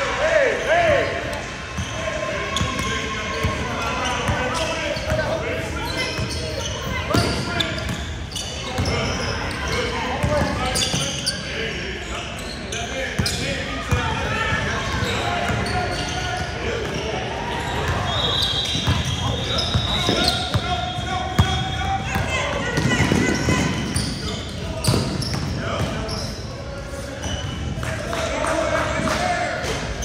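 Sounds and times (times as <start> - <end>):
echoing indistinct voices: 0.0 - 30.0.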